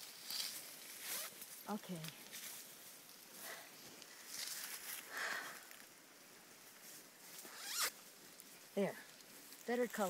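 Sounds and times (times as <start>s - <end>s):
jacket zipper unzipping: 7.5s - 7.9s.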